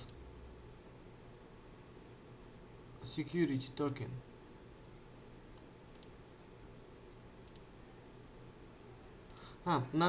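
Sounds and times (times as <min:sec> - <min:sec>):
faint computer mouse clicks: 0:05.5 - 0:06.2, 0:07.4 - 0:07.7, 0:09.3 - 0:09.5.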